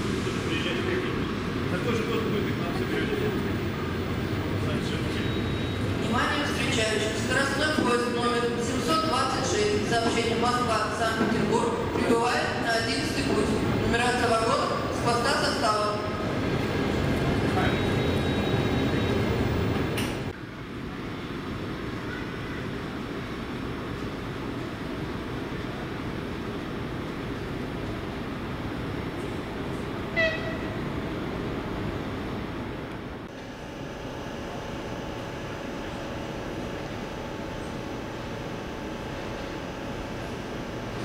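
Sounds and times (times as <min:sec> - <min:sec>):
steady rumble of standing train: 0:00.0 - 0:41.0.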